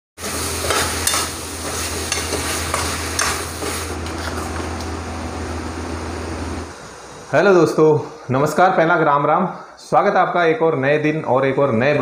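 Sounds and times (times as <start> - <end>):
vegetables sizzling in pan: 0.2 - 4.5
metal spoon scraping pan: 0.6 - 4.6.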